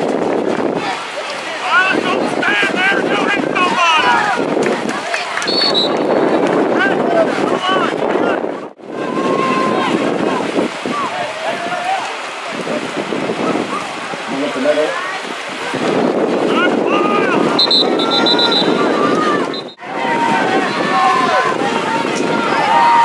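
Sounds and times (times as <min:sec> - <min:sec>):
wind buffeting microphone: 0:00.0 - 0:23.0
people shouting and calling: 0:00.8 - 0:23.0
short high whistle: 0:17.6 - 0:18.8.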